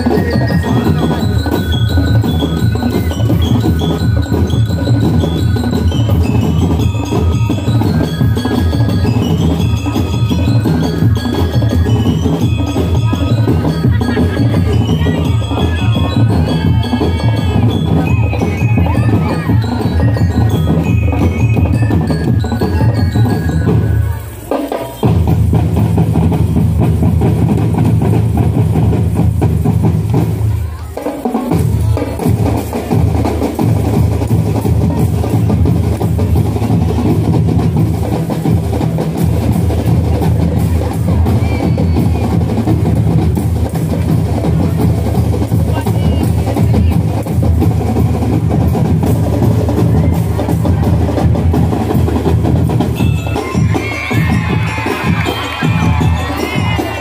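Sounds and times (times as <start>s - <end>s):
marching drumline cadence: 0.0s - 57.0s.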